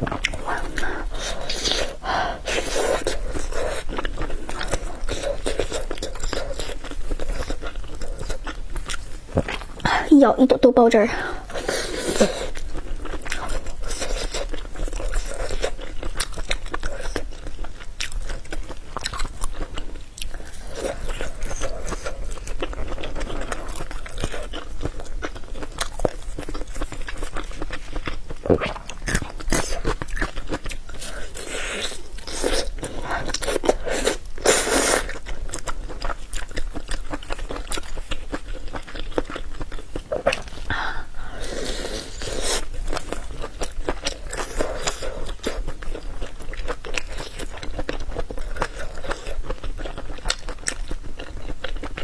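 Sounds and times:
wet chewing: 0.0 - 10.1, 10.9 - 52.0.

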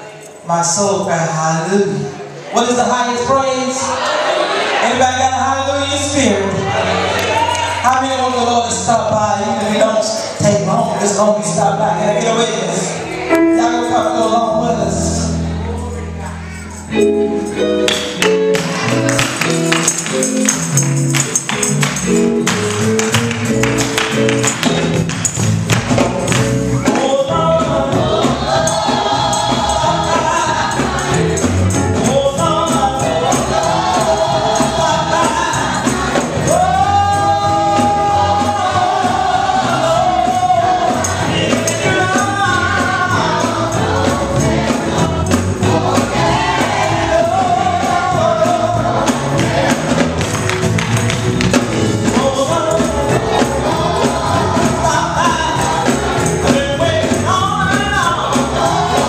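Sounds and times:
gospel group singing in harmony: 0.0 - 59.0
band with guitars and drums: 4.0 - 59.0
jingling tambourine strokes: 12.4 - 59.0
high percussion strikes: 12.5 - 59.0.

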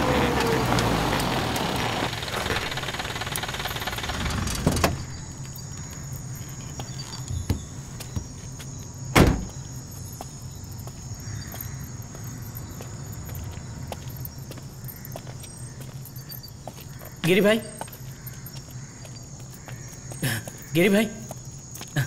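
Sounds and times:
car engine running: 0.0 - 5.3
car door slam: 9.1 - 9.5.

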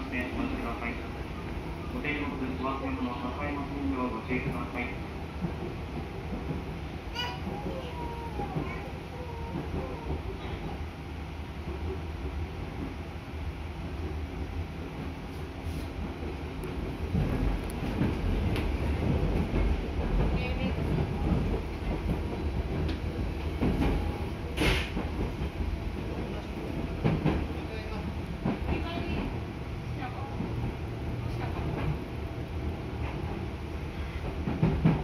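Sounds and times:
train wheels rumbling: 0.0 - 35.0.

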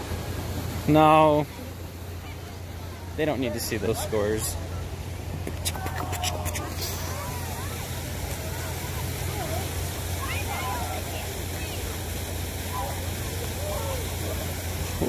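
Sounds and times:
fountain water rushing: 0.0 - 15.0
faint distant voices: 0.6 - 15.0.

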